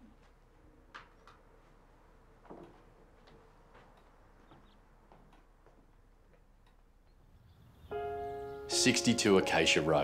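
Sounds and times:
plucked ringing chord music: 7.9s - 10.0s.

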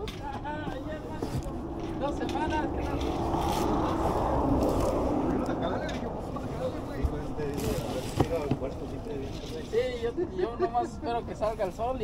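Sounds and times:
outdoor background rumble: 0.0s - 10.1s
faint voices: 0.0s - 12.0s.

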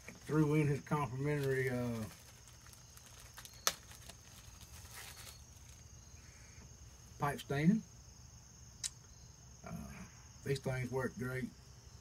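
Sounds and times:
crickets trilling: 0.0s - 12.0s
sharp click: 8.8s - 9.0s.

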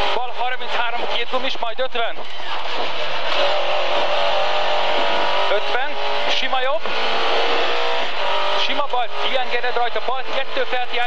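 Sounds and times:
rally car engine at high revs: 0.0s - 11.0s
road and cabin noise: 0.0s - 11.0s.

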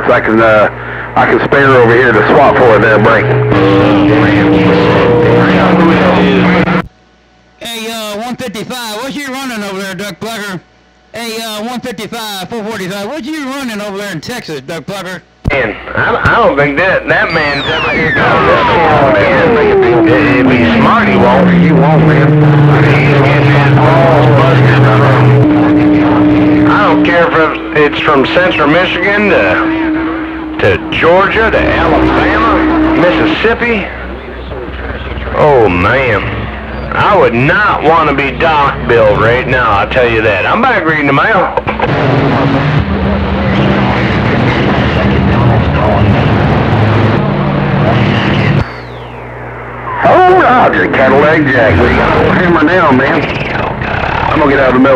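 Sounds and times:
garbled overlapping radio voices: 0.0s - 54.9s
low humming radio tones: 0.0s - 54.9s
whistle sweeping down in pitch: 17.2s - 19.9s, 48.6s - 50.1s.

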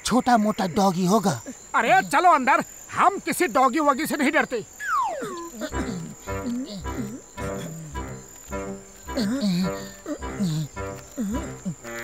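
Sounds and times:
background music: 5.7s - 12.0s.

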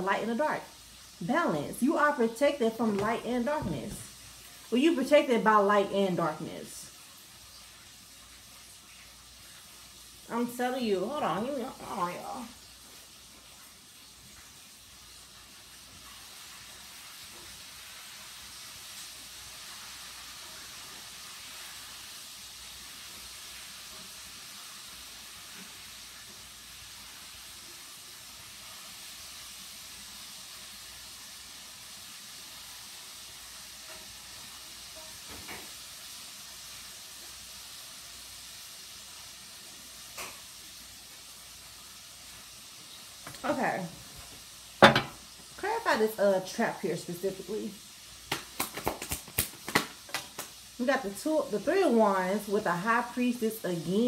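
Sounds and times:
faint steady hiss: 0.0s - 54.0s.

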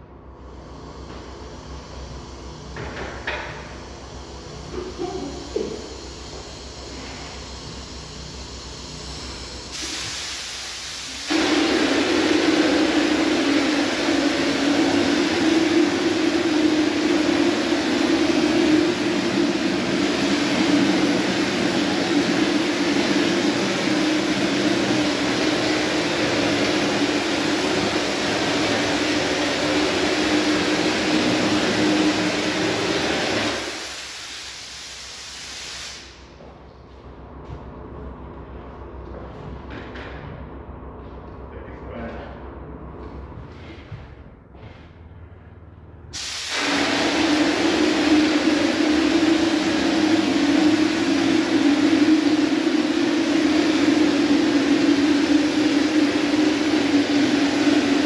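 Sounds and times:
compressed air hissing: 0.3s - 36.4s, 46.1s - 58.0s
spray gun rushing: 9.7s - 36.2s, 46.1s - 58.0s
low hum: 11.3s - 33.6s, 36.4s - 58.0s.

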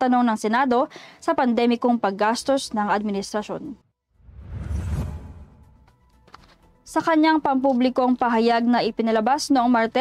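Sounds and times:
whoosh with deep rumble: 4.2s - 5.9s.

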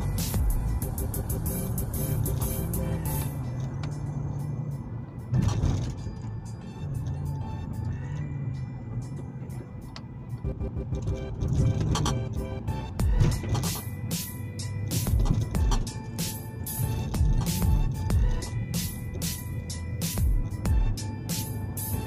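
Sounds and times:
music playing: 0.0s - 22.0s
vehicle road and engine noise: 0.0s - 22.0s.

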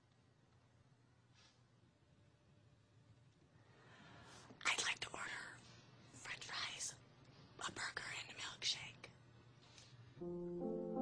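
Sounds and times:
woman whispering: 4.6s - 7.0s, 7.6s - 9.2s.

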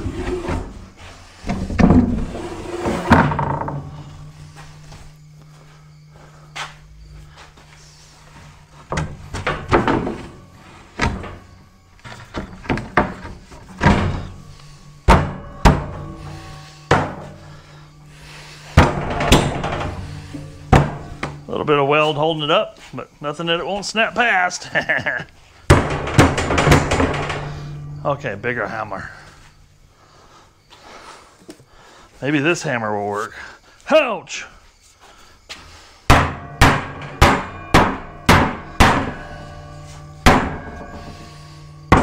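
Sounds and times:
wood scraping on metal rack: 0.0s - 4.9s, 7.9s - 22.4s, 25.7s - 29.4s
plywood thunks and knocks: 8.9s - 10.4s, 11.0s - 14.4s, 15.1s - 16.1s, 18.8s - 21.4s, 25.7s - 27.5s.

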